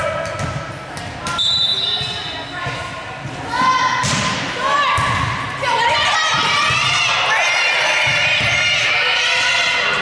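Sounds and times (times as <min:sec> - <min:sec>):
players calling and shouting: 0:00.0 - 0:10.0
volleyball hits: 0:02.0 - 0:05.5.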